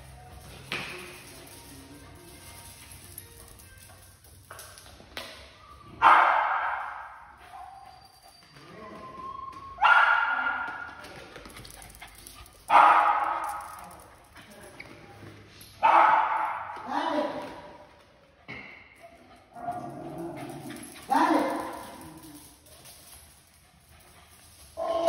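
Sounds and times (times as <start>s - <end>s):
dog barking: 6.0s - 7.1s, 9.8s - 10.8s, 12.7s - 13.6s, 15.8s - 16.7s.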